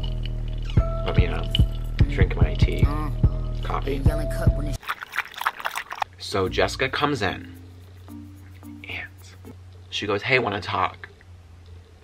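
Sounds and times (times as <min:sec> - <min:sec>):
background music with beat: 0:00.0 - 0:04.8, 0:06.5 - 0:09.5
sipping and swallowing coffee: 0:04.8 - 0:06.1.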